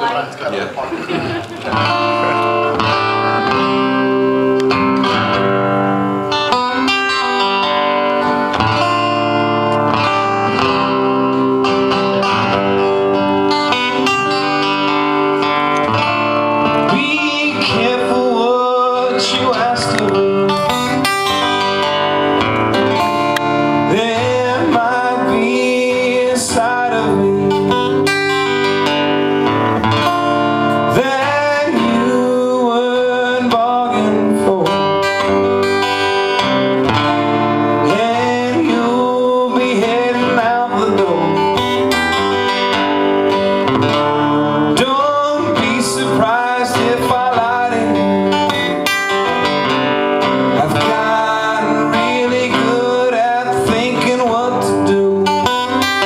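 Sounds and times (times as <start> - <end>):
acoustic guitars strummed: 0.9 - 56.0
man singing: 1.7 - 22.1, 22.7 - 28.9, 30.5 - 56.0.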